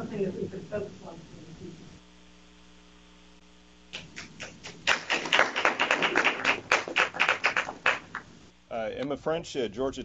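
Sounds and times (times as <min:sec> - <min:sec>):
audience applauding: 0:04.0 - 0:08.3.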